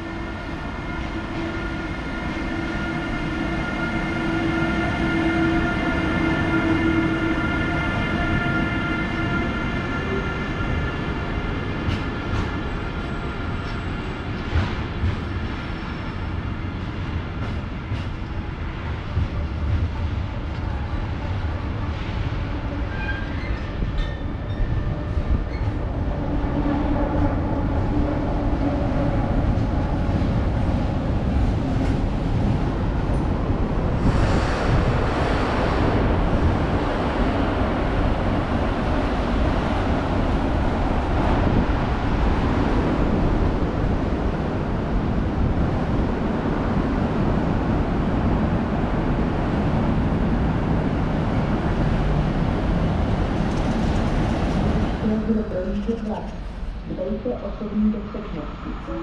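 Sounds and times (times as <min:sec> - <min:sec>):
train wheels rumbling on track: 0:00.0 - 0:59.0.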